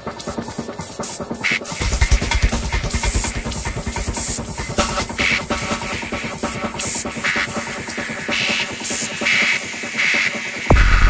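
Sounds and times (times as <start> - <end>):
psytrance music: 0.0 - 11.0.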